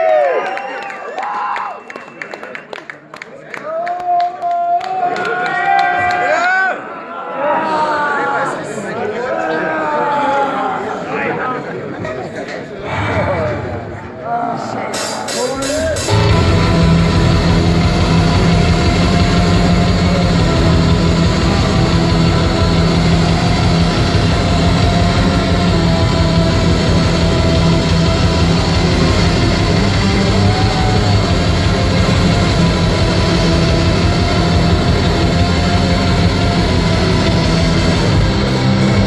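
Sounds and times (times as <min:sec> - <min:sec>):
loud distorted guitars: 0:14.9 - 0:39.0
drum machine beat: 0:15.0 - 0:39.0.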